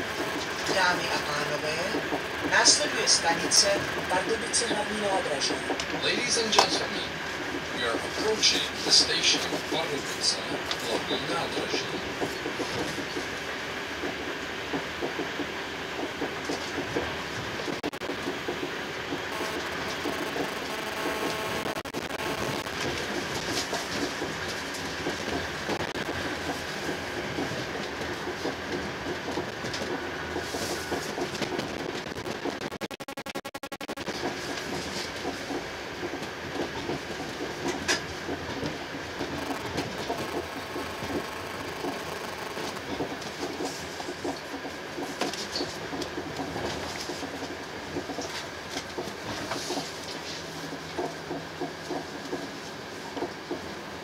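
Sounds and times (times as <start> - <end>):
rail joint clicks: 0.0 - 32.6, 34.1 - 54.0
train wheels rumbling on rail: 0.0 - 32.7, 34.0 - 54.0.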